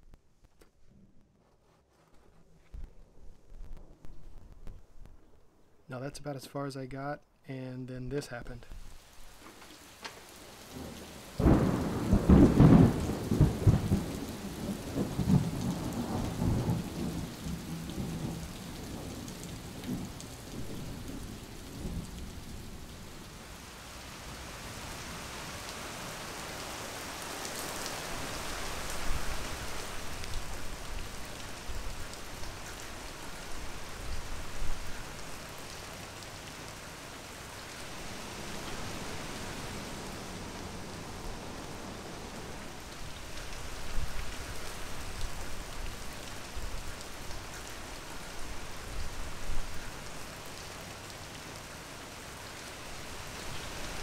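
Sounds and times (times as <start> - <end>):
rain on concrete: 8.7 - 54.0
thunder clap rumbling: 10.7 - 22.8.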